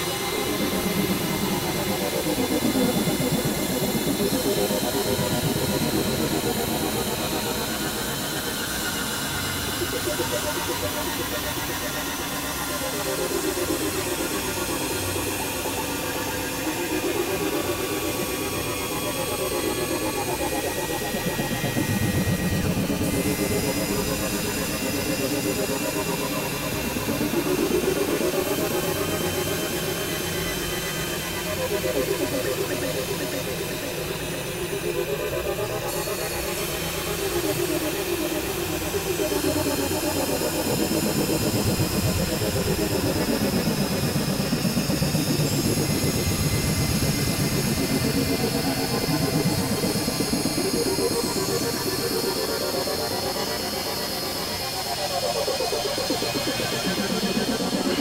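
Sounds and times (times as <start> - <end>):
droning noise music: 0.0 - 58.0
gliding pitch sweeps: 41.5 - 58.0.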